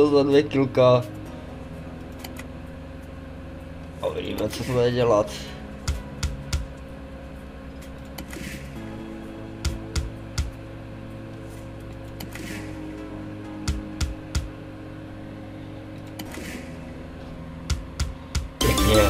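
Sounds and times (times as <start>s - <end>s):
electronic music: 17.7s - 19.0s.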